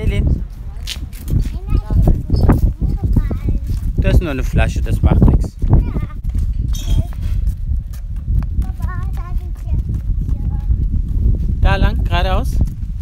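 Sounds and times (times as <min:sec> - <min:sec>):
wind buffeting microphone: 0:00.0 - 0:13.0
footsteps on brick paving: 0:00.2 - 0:04.2, 0:05.6 - 0:13.0
child's voice: 0:00.7 - 0:03.9, 0:05.6 - 0:07.4, 0:08.5 - 0:10.8.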